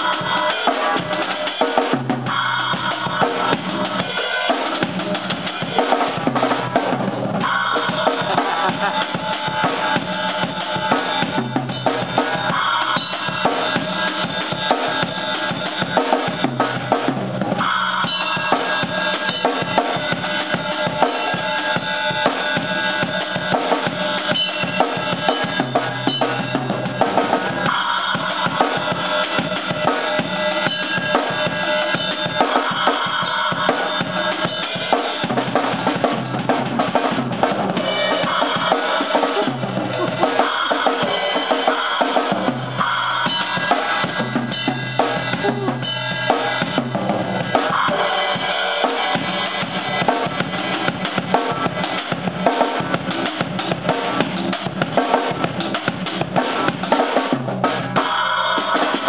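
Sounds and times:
drum kit played with sticks: 0.0 - 59.0.

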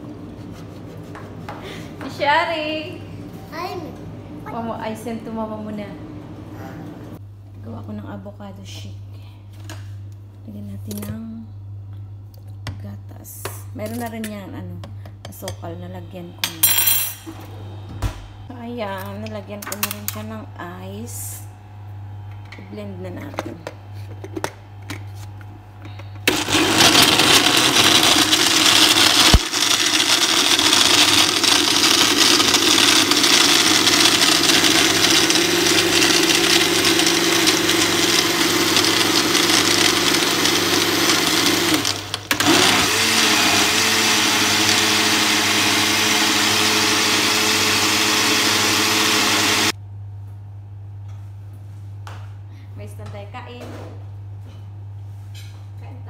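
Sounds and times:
blender running: 25.9 - 49.8.

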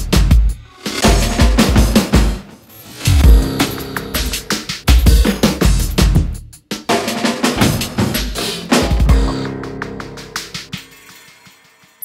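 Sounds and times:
electronic music drum break: 0.0 - 12.0.

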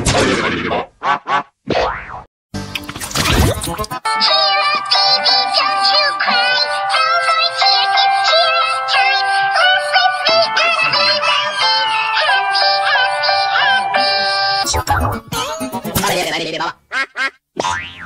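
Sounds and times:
electronically altered singing: 3.4 - 16.6
backing music: 14.6 - 16.3.

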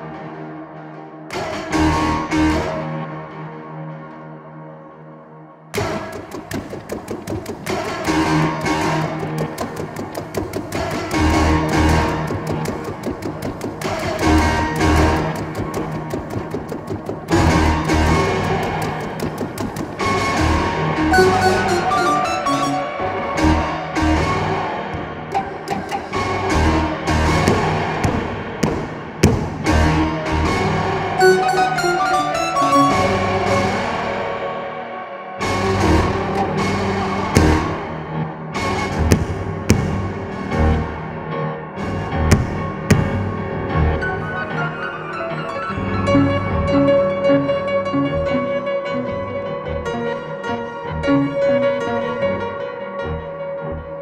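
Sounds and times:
grand piano played inside and out: 2.0 - 54.0
piano played percussively: 5.8 - 22.8, 25.3 - 30.5.

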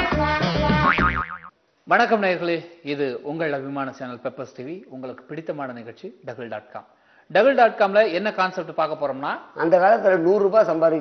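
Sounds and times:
man speaking: 1.9 - 11.0.

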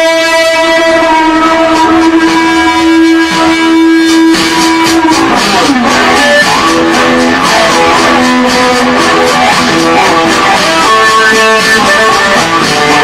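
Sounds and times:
electric guitar: 0.0 - 13.0.

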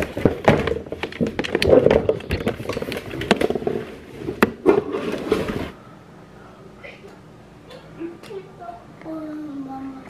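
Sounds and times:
clicks and knocks: 0.0 - 3.8.

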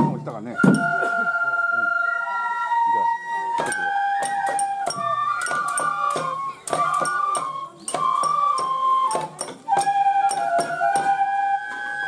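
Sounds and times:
bamboo flute long notes: 0.0 - 12.0
voices: 0.0 - 12.0.

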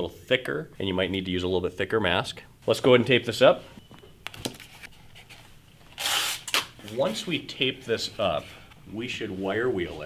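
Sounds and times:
masking tape scratching and rustling: 4.4 - 7.2.

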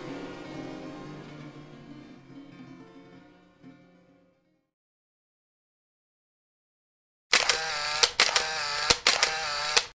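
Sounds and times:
sharp clicks: 7.3 - 10.0
small mechanism whirring: 7.3 - 10.0.

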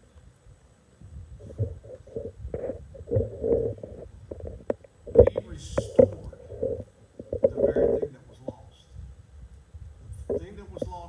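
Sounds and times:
microphone handling knocks: 1.3 - 8.6
muffled speech into microphone: 5.1 - 6.8, 7.4 - 8.9, 10.2 - 11.0.

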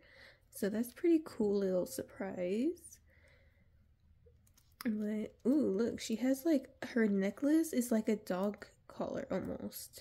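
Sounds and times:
woman's voice: 0.5 - 3.0, 4.8 - 10.0.

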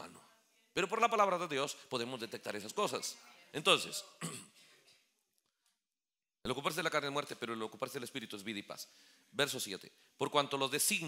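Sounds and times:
man clearing his throat: 4.2 - 4.6.

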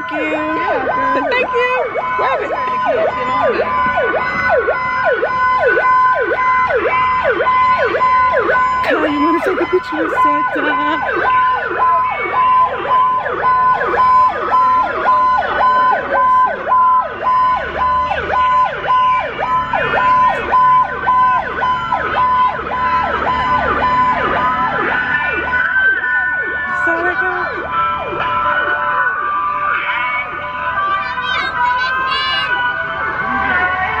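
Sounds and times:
fire truck sirens: 0.0 - 34.0.

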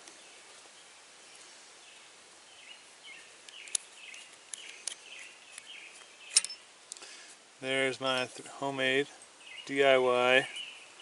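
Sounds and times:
sharp metallic clicks: 6.3 - 7.0.

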